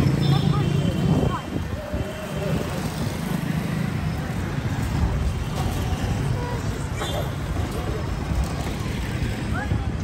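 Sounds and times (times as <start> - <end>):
passers-by chatting: 0.0 - 10.0
traffic running: 0.0 - 10.0.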